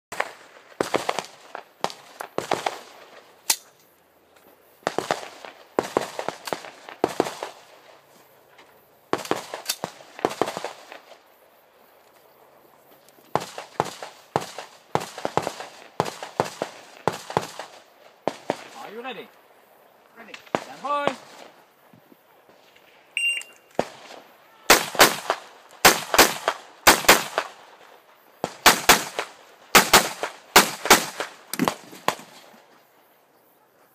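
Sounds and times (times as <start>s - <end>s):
rifle gunshots with echo: 24.7s - 27.6s, 28.4s - 32.3s.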